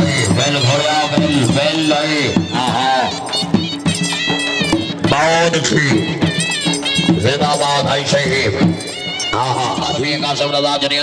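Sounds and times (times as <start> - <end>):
shehnai playing reedy notes: 0.0 - 10.0
drumming: 0.0 - 10.4.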